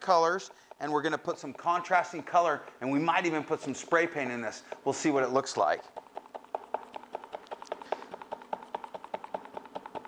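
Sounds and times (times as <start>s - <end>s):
stick tapping plastic cup: 0.0s - 10.0s.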